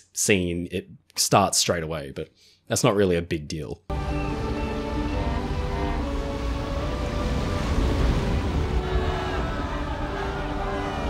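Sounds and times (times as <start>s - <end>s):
orchestral music: 3.9s - 11.0s
wash of noise: 3.9s - 11.0s.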